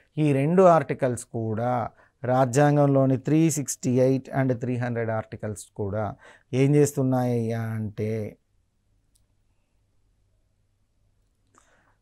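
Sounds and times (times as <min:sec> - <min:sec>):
man speaking: 0:00.2 - 0:08.4.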